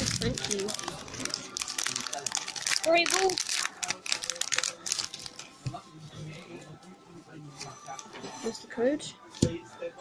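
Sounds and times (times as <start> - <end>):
faint background voices: 0.0 - 10.0
faint music: 0.0 - 10.0.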